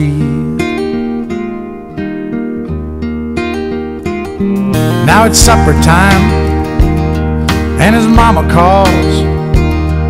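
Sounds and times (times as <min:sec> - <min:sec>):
acoustic guitar playing chords: 0:00.0 - 0:10.0.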